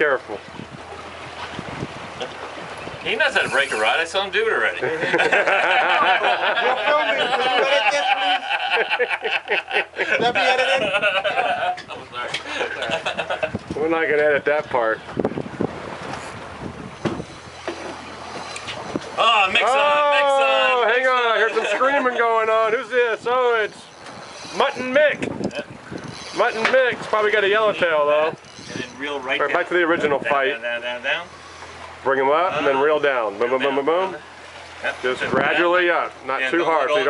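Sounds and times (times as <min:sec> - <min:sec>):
sea washing around boat: 0:00.0 - 0:37.0
wind rushing over microphone: 0:00.4 - 0:03.8, 0:12.7 - 0:17.5, 0:23.2 - 0:29.0, 0:35.2 - 0:35.6.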